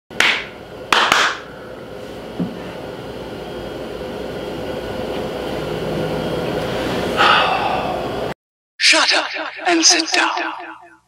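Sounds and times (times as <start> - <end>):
steady low hum: 0.1 - 8.4
hand claps: 0.2 - 1.5.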